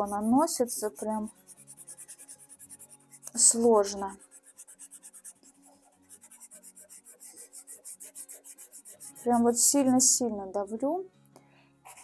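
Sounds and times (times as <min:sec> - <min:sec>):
pastel pencil scratching on paper: 0:00.0 - 0:10.1.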